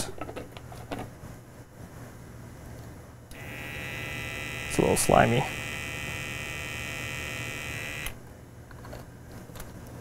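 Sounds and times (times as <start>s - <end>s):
pipette pump whirring: 3.3s - 8.2s.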